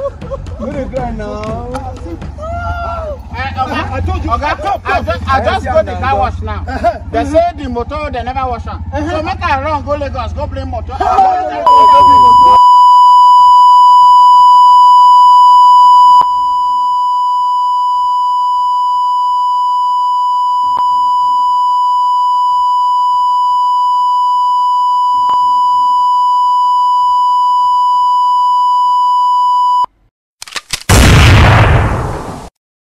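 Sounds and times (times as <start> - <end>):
high-pitched electronic beep tone: 11.7 - 29.9.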